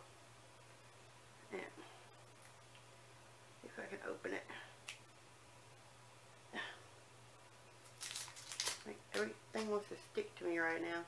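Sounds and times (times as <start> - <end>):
faint steady hum: 0.0 - 11.0
packaging crinkling: 7.8 - 9.8
person speaking: 8.8 - 11.0.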